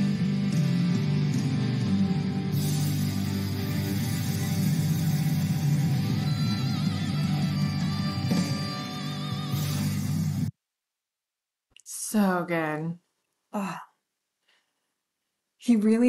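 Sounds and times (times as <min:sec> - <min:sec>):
bass guitar: 0:00.0 - 0:10.5
drums: 0:00.0 - 0:10.5.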